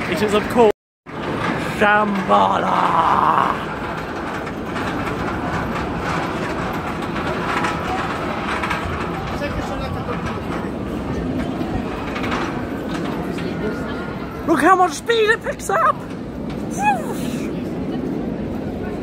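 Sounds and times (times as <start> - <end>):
roller coaster chain lift rattling: 0.0 - 19.0
crowd voices: 7.2 - 19.0.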